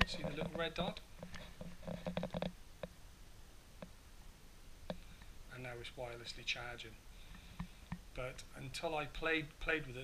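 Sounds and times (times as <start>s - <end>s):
faint clicks and taps of casings: 0.0s - 3.0s, 7.2s - 8.1s.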